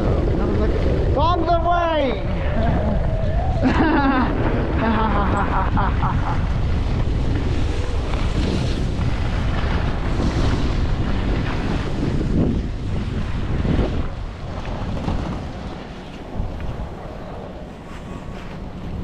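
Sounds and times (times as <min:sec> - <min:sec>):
wind buffeting microphone: 0:00.0 - 0:19.0
skis sliding on snow: 0:06.2 - 0:19.0.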